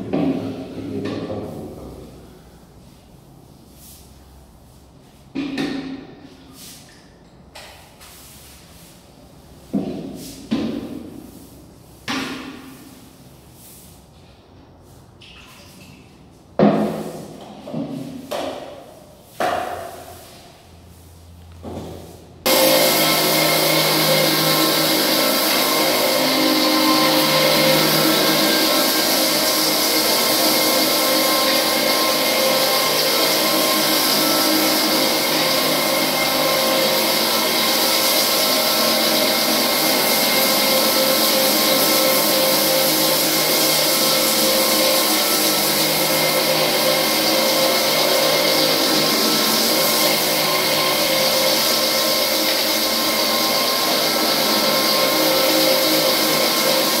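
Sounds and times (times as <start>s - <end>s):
floor sanding machine on wood: 7.9s - 15.1s, 16.3s - 57.0s.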